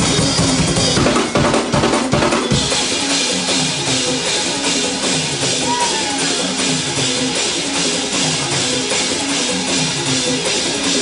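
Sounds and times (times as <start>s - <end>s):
fast drum kit: 0.0s - 11.0s
gospel church band playing: 0.0s - 11.0s.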